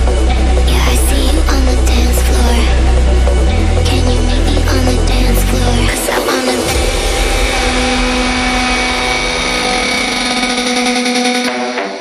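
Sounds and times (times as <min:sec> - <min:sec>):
steady rushing noise: 0:05.5 - 0:11.5.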